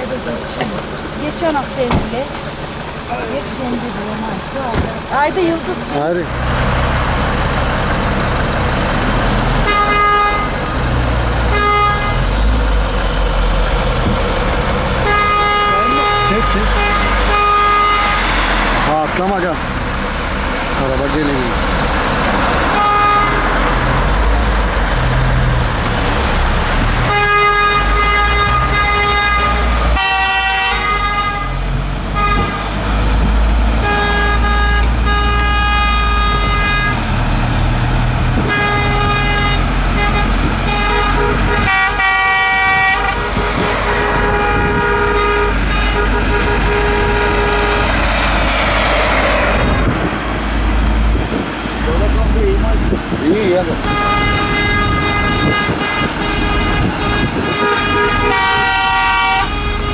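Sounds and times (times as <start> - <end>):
moving car rumble: 0.0 - 59.9
car horns honking: 9.5 - 13.2, 14.0 - 19.8, 20.8 - 59.9.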